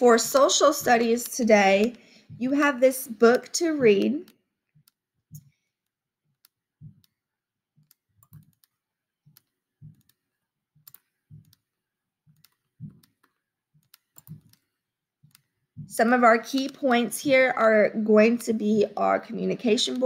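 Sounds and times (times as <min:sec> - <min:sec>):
computer mouse clicks: 0:00.3 - 0:02.4, 0:03.2 - 0:07.2, 0:07.8 - 0:10.2, 0:10.8 - 0:11.7, 0:12.3 - 0:15.6, 0:16.4 - 0:17.0.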